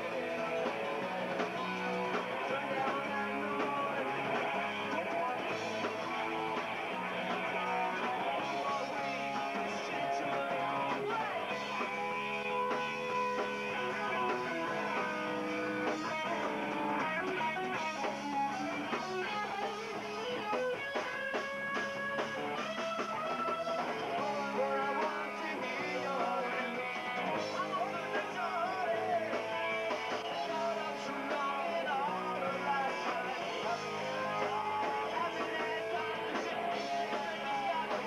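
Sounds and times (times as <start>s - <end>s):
hardcore band playing live: 0.0s - 38.0s.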